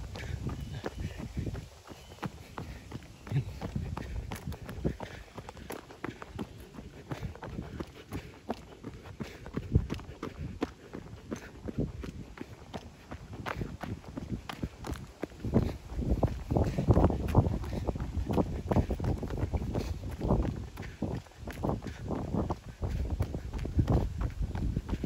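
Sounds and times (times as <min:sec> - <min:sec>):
running footsteps on pavement: 0:00.0 - 0:25.0.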